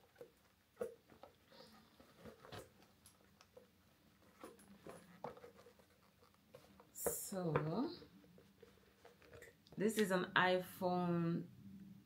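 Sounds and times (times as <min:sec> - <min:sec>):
phone rustling in handbag: 0:00.0 - 0:09.6.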